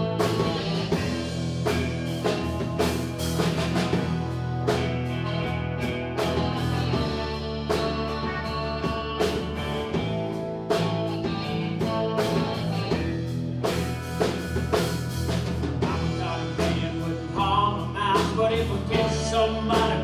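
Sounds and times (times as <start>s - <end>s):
drum kit beat: 0.0s - 20.0s
electric guitar: 0.0s - 20.0s.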